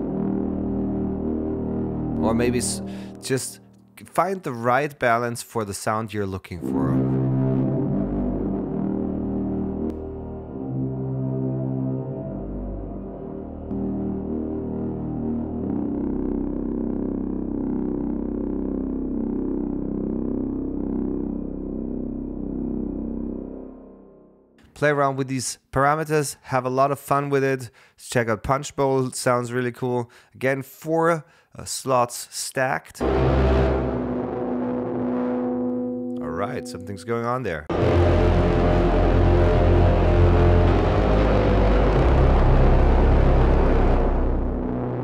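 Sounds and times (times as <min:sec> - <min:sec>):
low dense synth drone: 0:00.0 - 0:03.9, 0:06.6 - 0:24.6, 0:33.0 - 0:45.0.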